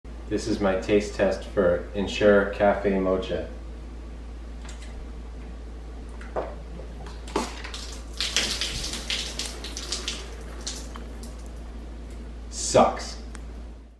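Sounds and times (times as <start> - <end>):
gulping drink: 6.8 - 11.9.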